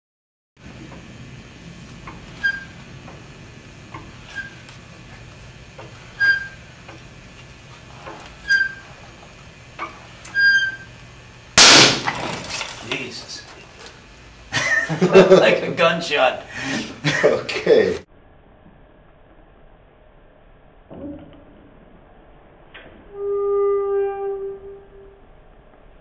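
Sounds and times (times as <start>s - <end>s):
short squeaks of loaded beam: 2.3s - 2.8s, 4.2s - 4.7s, 6.1s - 6.6s, 8.0s - 9.0s, 10.2s - 11.0s
wooden beam snapping with loud crack: 11.6s - 12.7s.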